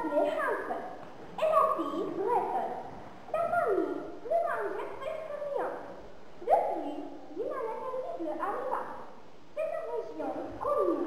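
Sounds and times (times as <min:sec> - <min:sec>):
girl reading aloud: 0:00.0 - 0:11.0.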